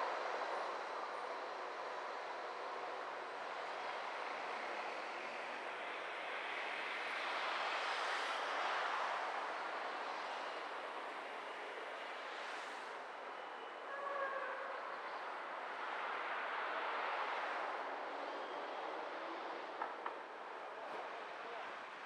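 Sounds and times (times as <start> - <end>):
car road and tyre noise: 0.0 - 22.0.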